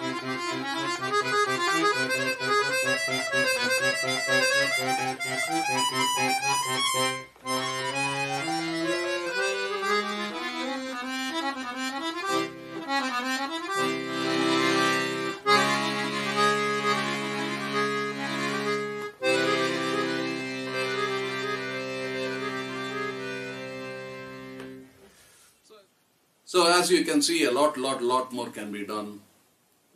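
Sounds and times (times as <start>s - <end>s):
low accordion bass notes: 0.0s - 25.0s
accordion melody: 0.0s - 25.2s.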